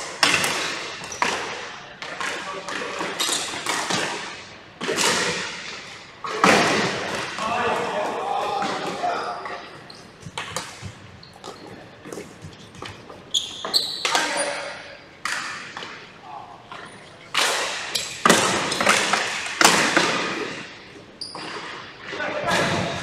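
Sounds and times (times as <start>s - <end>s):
shoes squeaking on floor: 3.2s - 4.0s, 7.6s - 15.0s, 20.3s - 22.0s
players shouting: 7.3s - 9.6s
sticks and ball cracking: 17.3s - 20.6s.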